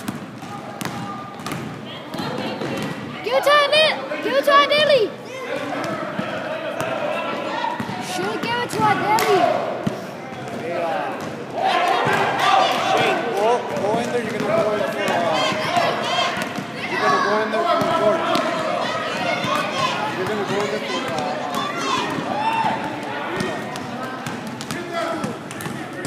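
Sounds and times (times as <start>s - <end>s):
voices of players and spectators: 0.0s - 26.0s.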